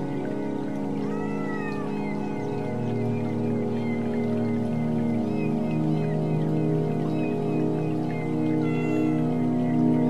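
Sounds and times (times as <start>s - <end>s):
music of held tones: 0.0s - 10.0s.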